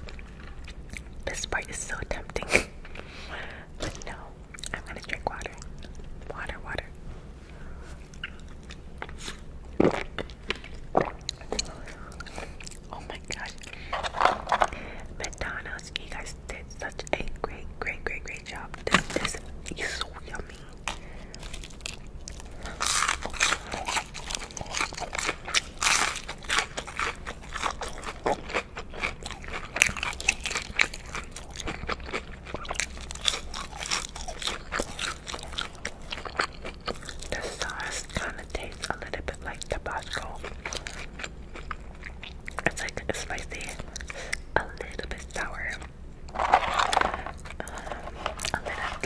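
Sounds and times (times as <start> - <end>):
wet chewing: 19.2 - 49.0
crunchy bites into fried food: 20.9 - 37.3.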